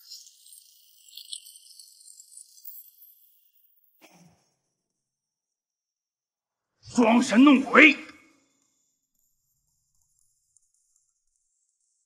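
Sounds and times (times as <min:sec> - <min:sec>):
small ticks: 0:00.0 - 0:04.3, 0:08.5 - 0:12.0
high-pitched shimmering rattle: 0:00.0 - 0:04.6.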